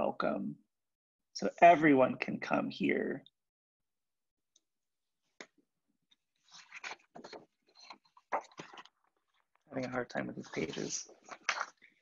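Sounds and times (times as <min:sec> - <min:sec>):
book pages rustling: 0:05.4 - 0:12.0.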